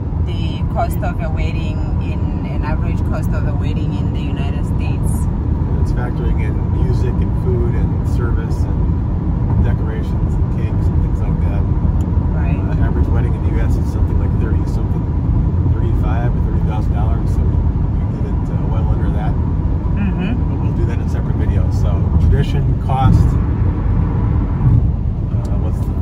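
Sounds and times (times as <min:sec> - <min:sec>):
car cabin road noise: 0:00.0 - 0:26.0.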